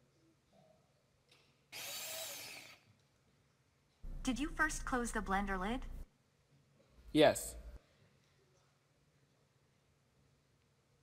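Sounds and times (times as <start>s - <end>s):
blender motor whine: 1.8s - 2.8s.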